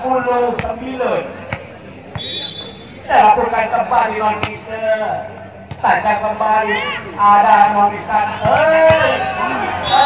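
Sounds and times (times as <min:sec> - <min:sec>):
volleyball bouncing on court: 0:00.5 - 0:00.8, 0:01.5 - 0:02.3, 0:04.4 - 0:04.6, 0:08.4 - 0:09.2
short high whistle: 0:02.2 - 0:02.8.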